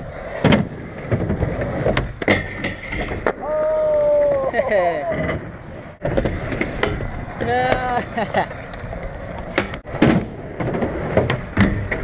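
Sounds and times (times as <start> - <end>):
skateboard wheels rolling on concrete: 0.0 - 12.0
skateboard clacks: 0.2 - 3.6, 4.2 - 12.0
person shouting: 3.4 - 5.2, 7.4 - 8.0.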